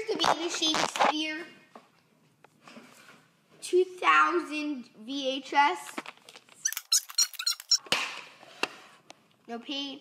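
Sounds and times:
plastic case squeaking: 0:06.6 - 0:07.8.

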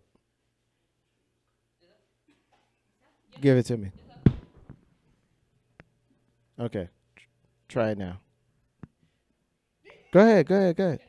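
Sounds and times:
microphone handling thump: 0:04.0 - 0:04.8.

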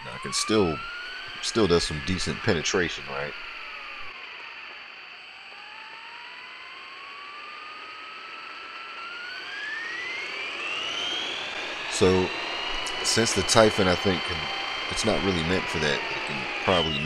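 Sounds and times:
rc car electric motor whining: 0:00.0 - 0:17.0.

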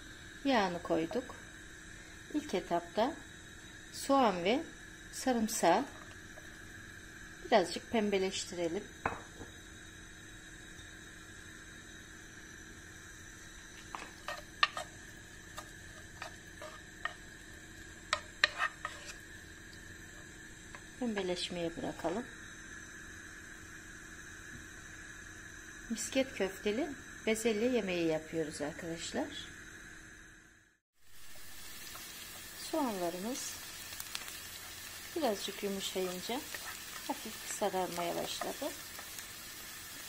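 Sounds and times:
onion sizzling in oil: 0:00.0 - 0:30.4, 0:31.0 - 0:40.0
faint steady hum: 0:00.0 - 0:40.0
wooden spoon scraping a pan: 0:13.9 - 0:17.3, 0:18.1 - 0:19.2.

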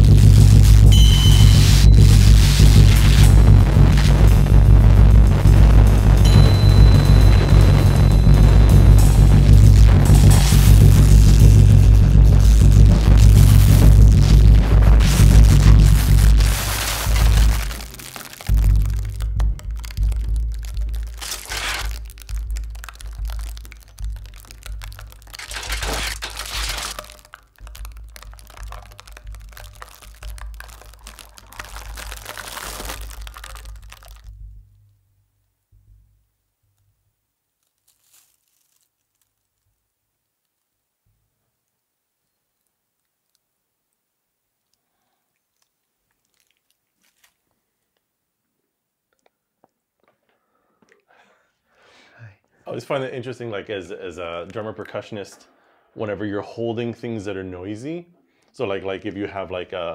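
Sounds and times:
improvised drum kit playing: 0:00.0 - 0:32.4
live electronics: 0:00.0 - 0:34.2
crinkled foil crackling: 0:00.0 - 0:34.4, 0:37.5 - 0:40.9, 0:44.6 - 0:48.1.

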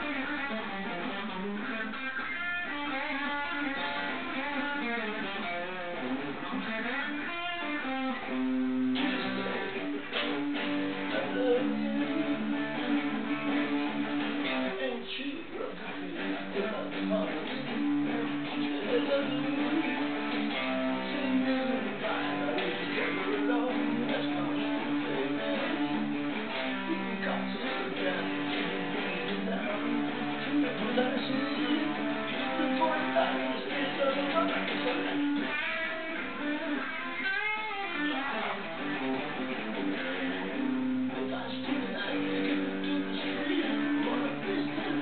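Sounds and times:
electric guitar through amplifier: 0:00.0 - 0:45.0.

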